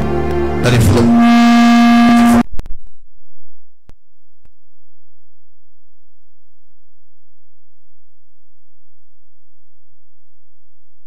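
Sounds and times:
held organ-like note: 0.0s - 2.4s.

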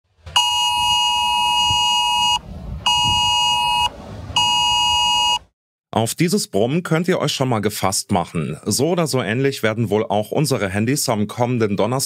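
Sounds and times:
low buzz: 0.3s - 5.4s
phone emergency alert tone: 0.4s - 5.5s.

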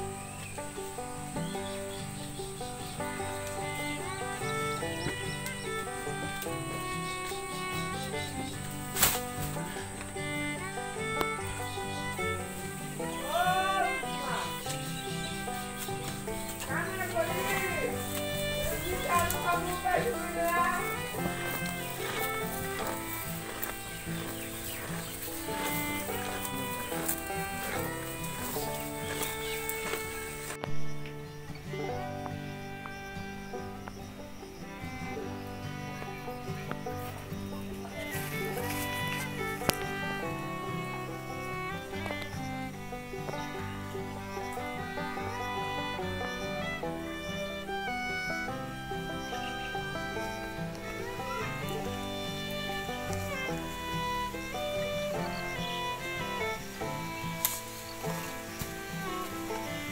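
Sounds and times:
background music: 0.0s - 59.9s.

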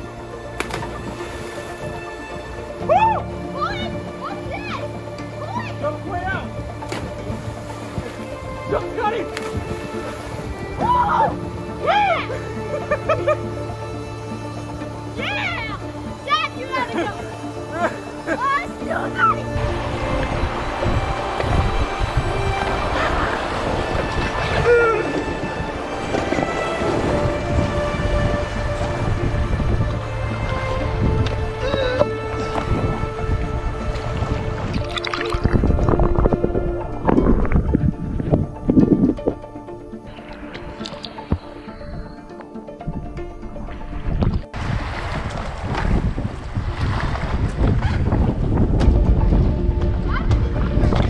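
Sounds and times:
background music: 0.0s - 51.0s
water rushing and splashing: 0.0s - 51.0s
wind buffeting microphone: 6.3s - 11.5s, 19.4s - 51.0s.

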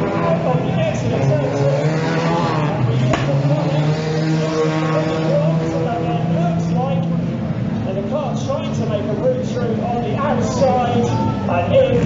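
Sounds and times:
racing car engines droning: 0.0s - 12.0s.

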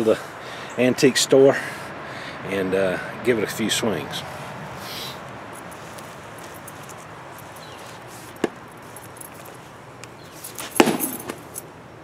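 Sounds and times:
keys jangling: 5.5s - 9.7s, 10.3s - 11.7s
knocks and clinks of axe handling: 10.5s - 11.7s.

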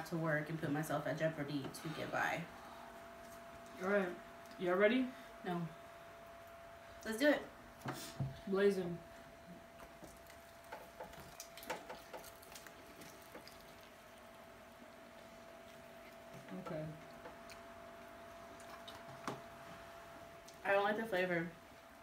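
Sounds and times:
faint steady hum: 0.0s - 22.0s
people chewing and biting: 9.8s - 14.3s, 15.0s - 19.2s.

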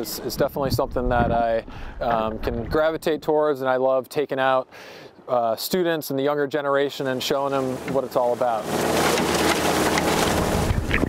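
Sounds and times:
water churning and splashing: 7.0s - 11.0s.

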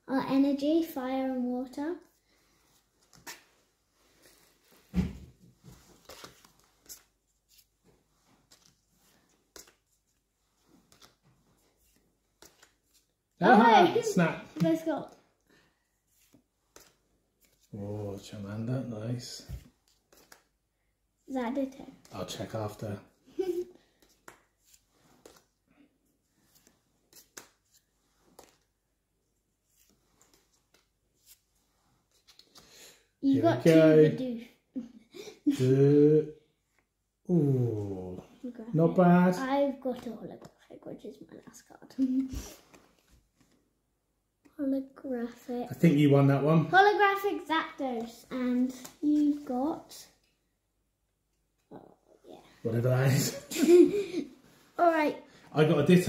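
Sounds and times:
trading cards flicking and rustling: 3.0s - 3.6s, 5.6s - 13.3s, 13.9s - 15.2s, 16.0s - 17.8s, 19.5s - 20.6s, 21.4s - 25.7s, 26.3s - 28.8s, 29.4s - 32.7s, 47.4s - 50.4s.

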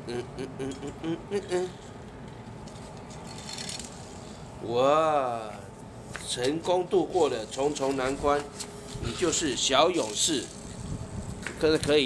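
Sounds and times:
toy car wheels rattling scrape: 10.0s - 10.8s.

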